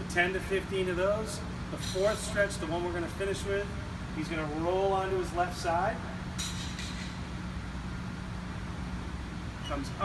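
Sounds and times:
ventilation hum: 0.0s - 10.0s.

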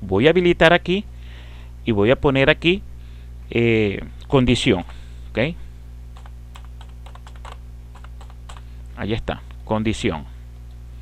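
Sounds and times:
low electrical hum: 0.0s - 11.0s
keyboard keys clicking: 6.2s - 8.6s.

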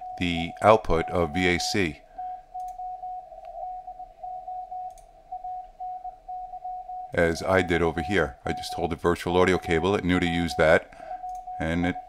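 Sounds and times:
morse code tone: 0.0s - 12.0s.

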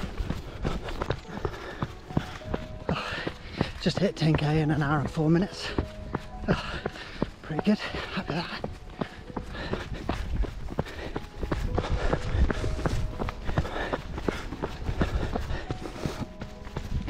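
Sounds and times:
running footsteps on muddy path: 0.0s - 17.0s.

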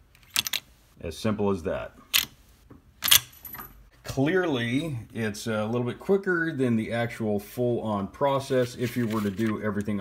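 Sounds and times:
rattle of rifle parts: 0.2s - 0.7s, 3.0s - 3.8s
rifle action metallic clacks: 2.1s - 2.4s, 3.0s - 3.7s.

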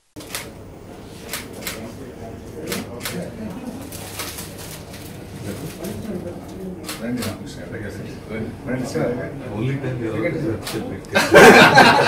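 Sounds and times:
murmur of voices: 0.3s - 12.0s.

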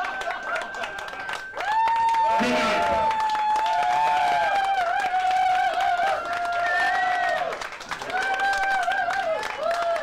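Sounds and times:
long held whoops: 0.0s - 7.4s
crowd clapping and cheering: 0.0s - 10.0s.

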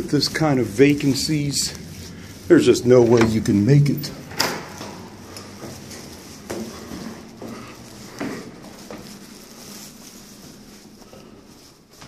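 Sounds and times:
footsteps climbing stairs: 0.0s - 12.0s.

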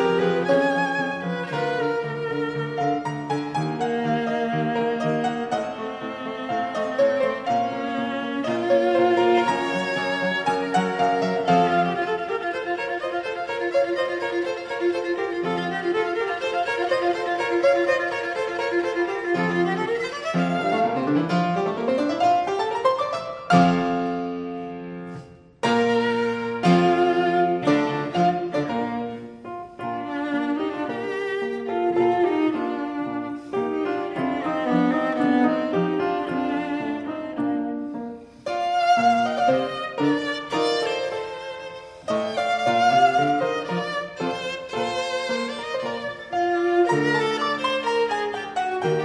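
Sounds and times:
viola and piano sonata: 0.0s - 49.0s.

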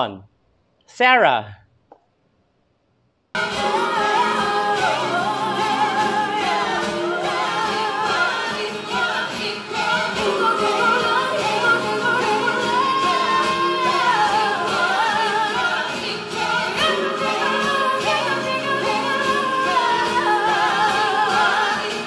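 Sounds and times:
layered recorded vocals: 3.4s - 22.0s
woman singing pop: 3.4s - 22.0s.

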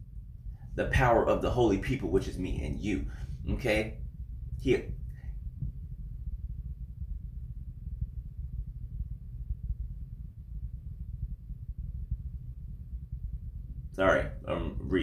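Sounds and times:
low steady rumble: 0.0s - 15.0s.

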